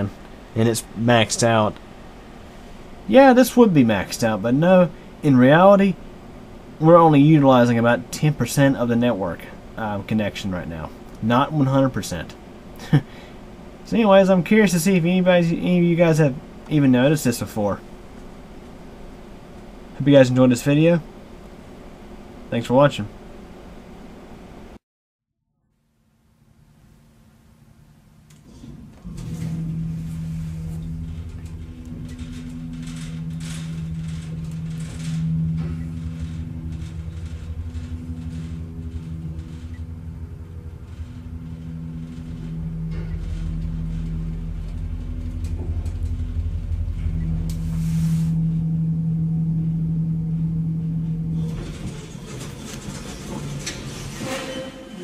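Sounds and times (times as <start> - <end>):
elevator motor hum and rumble: 0.0 - 24.8, 26.4 - 55.0.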